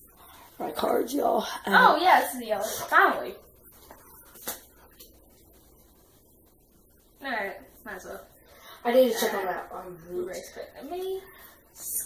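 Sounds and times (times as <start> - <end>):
playing card snap: 4.4 - 4.7.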